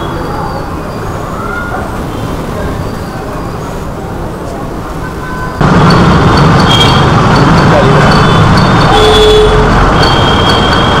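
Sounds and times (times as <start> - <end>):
motor traffic: 0.0 - 11.0
horn-like tone: 8.3 - 11.0.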